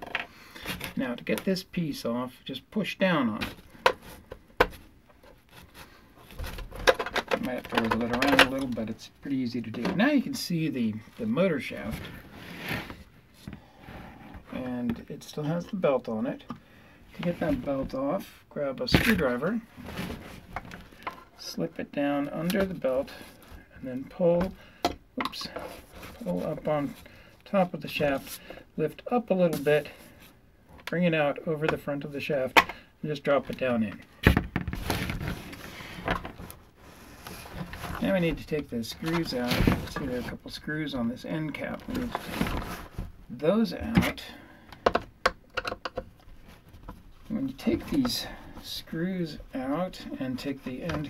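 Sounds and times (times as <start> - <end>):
plastic housing knocking and scraping: 6.2 - 8.8, 43.8 - 47.0
plastic vacuum rustling scrape: 11.0 - 14.9, 18.9 - 21.5, 34.7 - 43.2, 46.3 - 51.0.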